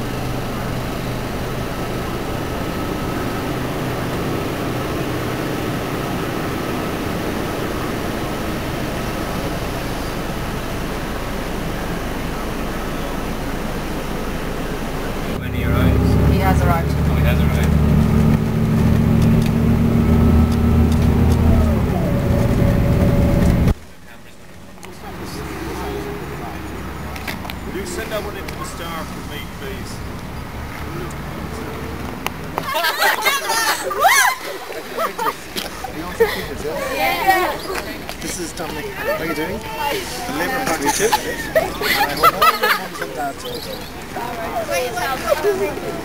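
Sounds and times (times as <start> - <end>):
bus engine: 0.0 - 46.0
road noise: 0.0 - 46.0.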